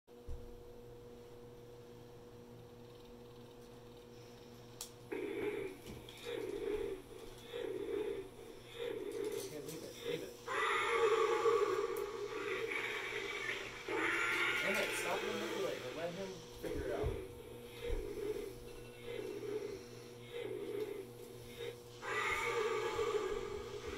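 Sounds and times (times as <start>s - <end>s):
electronic roar from toy speaker: 5.1s - 15.8s, 16.7s - 23.9s.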